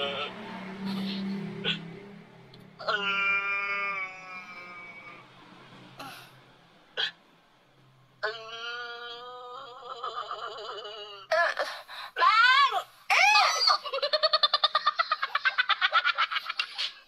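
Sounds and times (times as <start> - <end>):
laugh-like pulses: 0.0 - 1.9
high-pitched cries: 2.8 - 5.2, 8.2 - 14.2
high-pitched voice wailing: 12.2 - 13.9.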